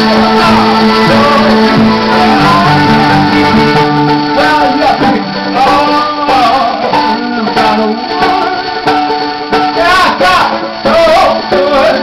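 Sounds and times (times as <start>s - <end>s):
plucked strings: 0.0s - 12.0s
violin playing: 0.0s - 12.0s.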